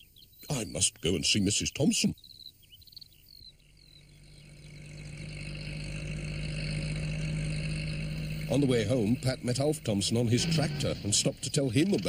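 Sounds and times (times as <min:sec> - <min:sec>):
faint bird chirps: 0:00.0 - 0:12.0
van engine approaching: 0:03.4 - 0:12.0.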